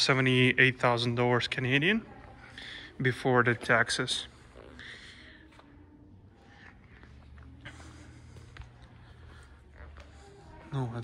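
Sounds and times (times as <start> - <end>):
faint footsteps: 0.0 - 11.0.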